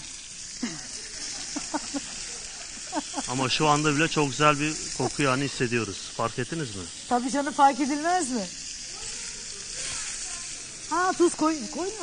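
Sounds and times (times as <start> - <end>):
steaks sizzling in a hot pan: 0.0 - 12.0.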